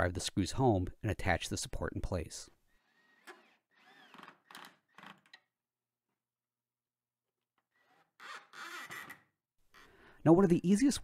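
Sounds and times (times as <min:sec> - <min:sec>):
screws being driven into wood: 0:02.8 - 0:05.4, 0:07.7 - 0:09.9.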